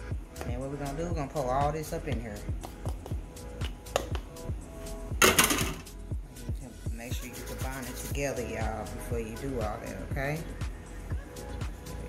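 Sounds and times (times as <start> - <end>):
hip-hop music with deep bass: 0.0 - 12.0.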